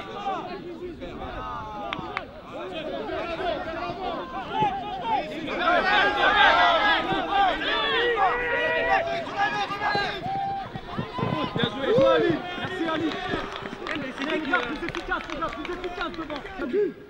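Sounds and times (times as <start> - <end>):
players shouting: 0.0 - 17.0.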